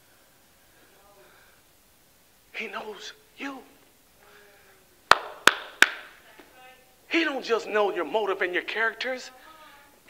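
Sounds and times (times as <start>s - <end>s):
man clapping hands: 5.1s - 6.1s.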